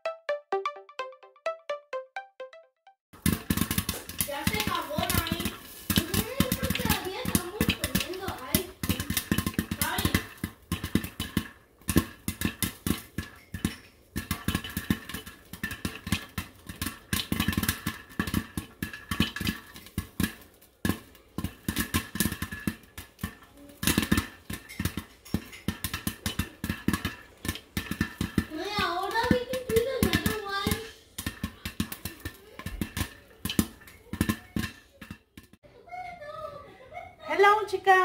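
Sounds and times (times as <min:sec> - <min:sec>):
popcorn popping in a covered pan: 0:03.1 - 0:35.7, 0:37.3 - 0:38.0.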